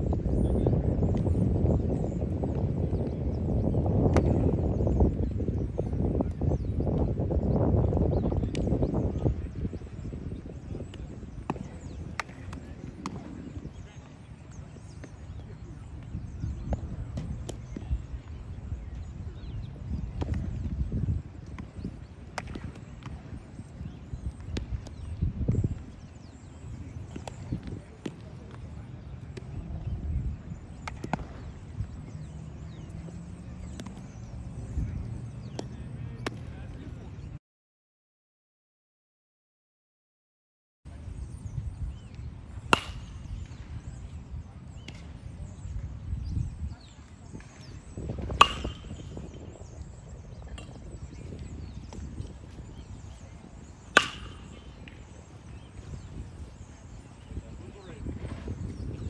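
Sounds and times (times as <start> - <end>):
baseballs being hit: 2.0 - 4.9, 8.4 - 29.8, 30.6 - 36.8, 42.0 - 46.4, 47.0 - 59.0
faint voices: 8.3 - 20.6, 25.7 - 37.4, 40.9 - 59.0
baseball bat striking ball: 10.8 - 13.2, 22.4 - 22.8, 42.7 - 44.0, 47.3 - 56.7.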